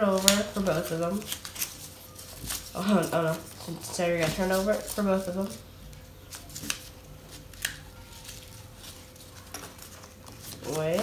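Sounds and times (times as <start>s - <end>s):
paper rustling: 0.0s - 11.0s.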